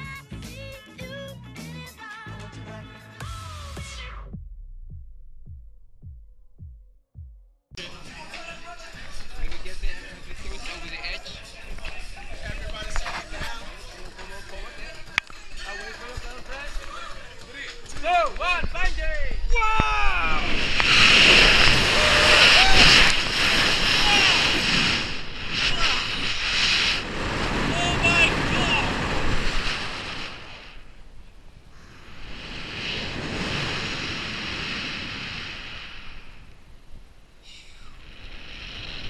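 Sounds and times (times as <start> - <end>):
wind rushing over microphone: 18.4 - 39.0
person whooping: 21.8 - 23.1.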